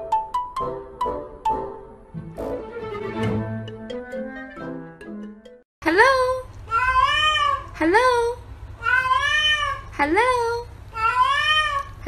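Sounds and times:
cat meowing: 11.0s - 12.0s.

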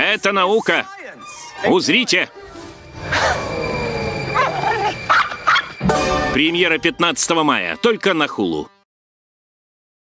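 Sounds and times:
music: 0.0s - 8.9s
animal whining: 0.5s - 1.8s, 3.0s - 5.8s
animal yelping: 3.0s - 5.8s.

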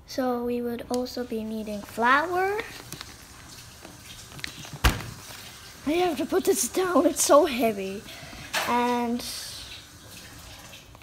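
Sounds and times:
paper bag handling noise: 1.7s - 6.5s.

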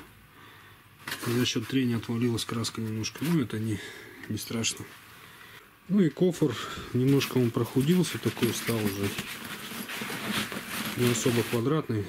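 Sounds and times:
hand rubbing fabric bag: 7.0s - 11.8s.

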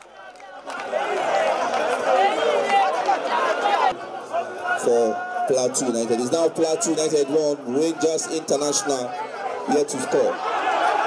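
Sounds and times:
crowd shouting and calling: 0.0s - 11.0s
man commentating: 4.7s - 10.4s.

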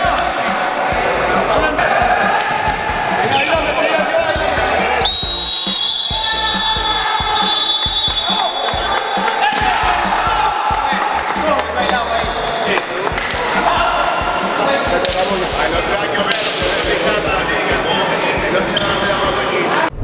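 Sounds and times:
players' voices: 0.0s - 20.0s
referee's whistle blast: 5.0s - 8.9s.

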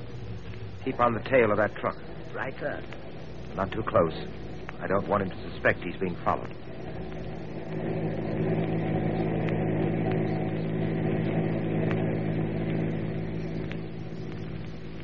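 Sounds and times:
car engine running: 0.0s - 15.0s.

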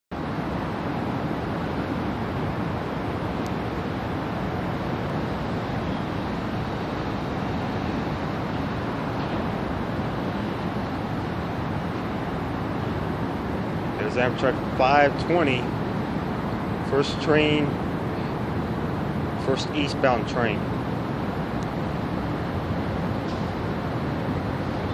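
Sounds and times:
outdoor rumbling hiss: 0.1s - 24.9s.

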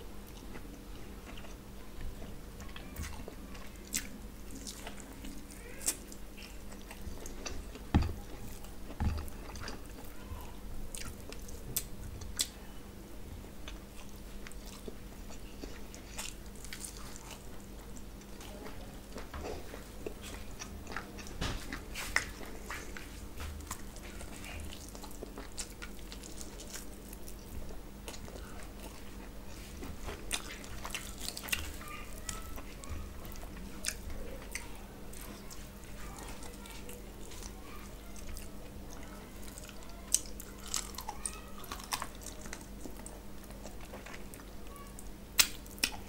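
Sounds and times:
chewing meat on the bone: 0.2s - 12.6s, 13.6s - 46.0s.

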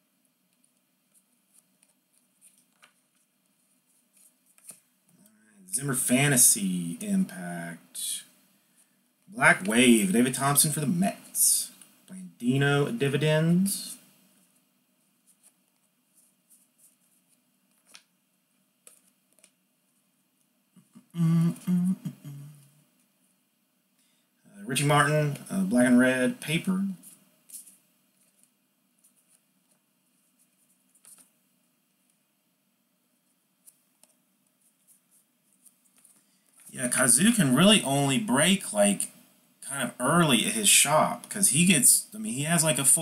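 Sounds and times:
trading cards flipping: 0.6s - 3.3s, 4.1s - 4.9s, 15.3s - 18.1s, 18.8s - 19.6s, 27.0s - 29.8s, 30.4s - 31.3s, 34.8s - 36.7s.

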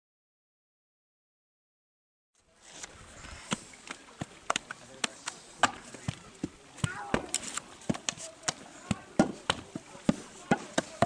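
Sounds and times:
background work noise: 2.4s - 11.0s
bricks knocking and clacking: 4.2s - 11.0s.

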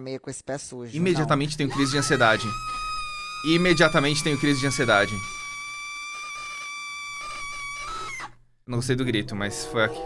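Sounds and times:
man screaming: 1.1s - 8.0s.

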